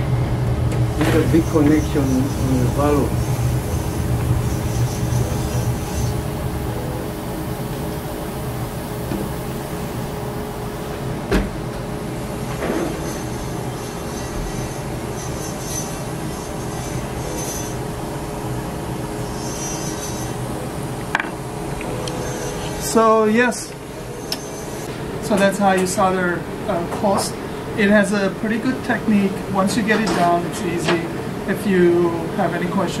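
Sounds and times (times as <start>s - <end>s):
gas torch hissing: 0.9s - 11.0s.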